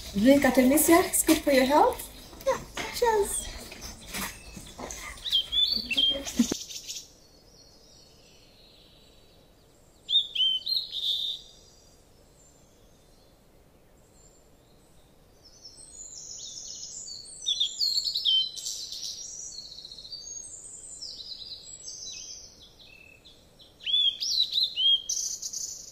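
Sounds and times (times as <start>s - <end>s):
small birds chirping: 0.0s - 13.4s, 14.0s - 25.9s.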